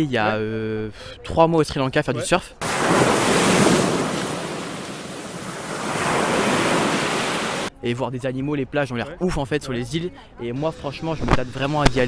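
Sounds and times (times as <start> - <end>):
waves breaking: 2.6 - 7.7.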